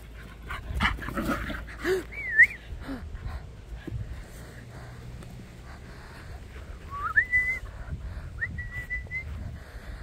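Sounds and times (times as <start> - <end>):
person whistling: 2.1 - 2.6, 6.9 - 7.6, 8.4 - 9.3.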